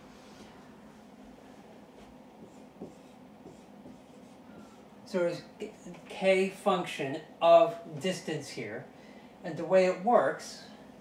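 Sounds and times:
marker writing on whiteboard: 0:02.0 - 0:04.9.

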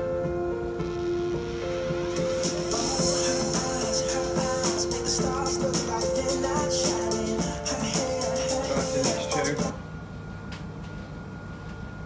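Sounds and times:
music from boombox speakers: 0:00.0 - 0:09.8
high-pitched percussion: 0:00.8 - 0:09.8.

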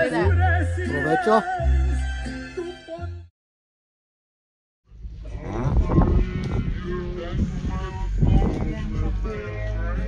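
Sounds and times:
low voice with bending pitch: 0:04.9 - 0:10.0.

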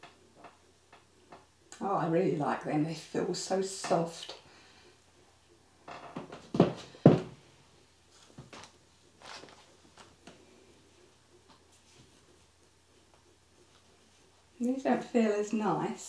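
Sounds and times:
faint rustles and taps: 0:05.9 - 0:07.4, 0:08.1 - 0:14.8.

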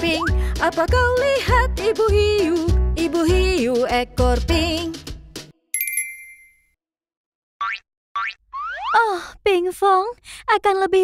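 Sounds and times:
bright bell-like chime: 0:05.8 - 0:06.7.

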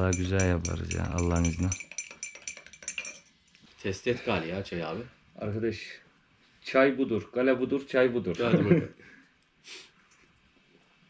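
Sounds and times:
teaspoon clinking in tea glass: 0:00.0 - 0:03.4.

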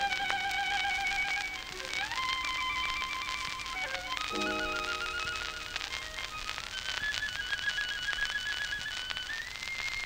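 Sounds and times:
violin melody with vibrato: 0:00.0 - 0:09.9
old record hiss and crackle: 0:00.0 - 0:10.0.

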